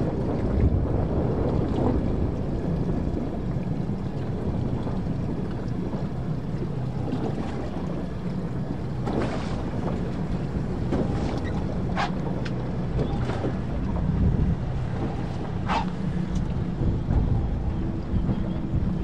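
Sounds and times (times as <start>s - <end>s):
rushing water: 0.0s - 19.0s
wind rumbling on microphone: 0.0s - 19.0s.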